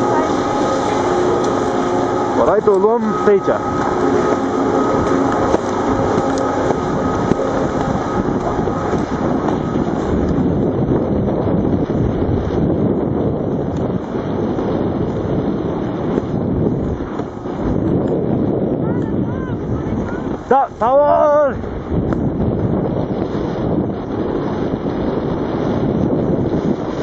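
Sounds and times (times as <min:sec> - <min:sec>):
wind rushing over microphone: 0:00.0 - 0:27.0.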